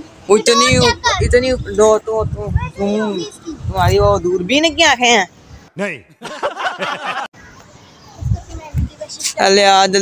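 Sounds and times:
faint children's voices: 0:00.0 - 0:04.1, 0:07.3 - 0:09.7.

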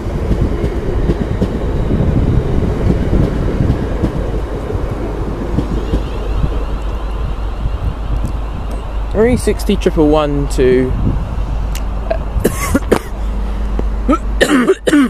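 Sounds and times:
train carriages rushing by: 0:00.0 - 0:14.4
train wheels rumbling on rails: 0:00.0 - 0:15.0.

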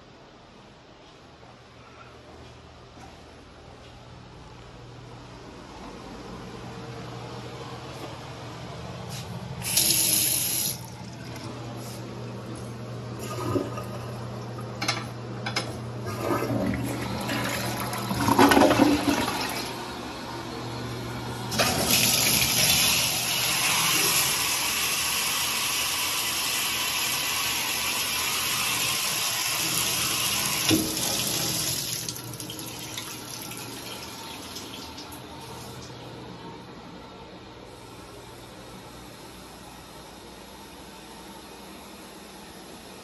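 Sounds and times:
toilet flushing: 0:09.6 - 0:11.9, 0:13.1 - 0:15.0, 0:15.9 - 0:36.1.

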